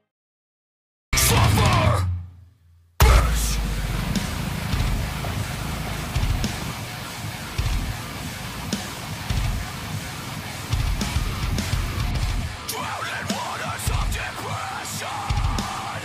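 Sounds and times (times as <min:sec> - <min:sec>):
rock music with guitar and drums: 0:01.2 - 0:02.2, 0:03.0 - 0:16.0.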